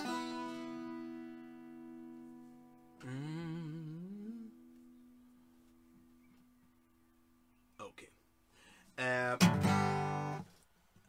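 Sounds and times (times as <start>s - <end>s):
acoustic guitar chords strummed: 0.0s - 4.8s, 9.0s - 10.6s.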